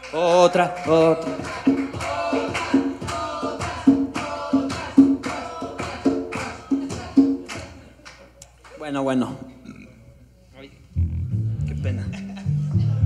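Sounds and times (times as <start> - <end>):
rhythmic clapping: 0.0 - 9.0
audience chanting: 1.2 - 7.9.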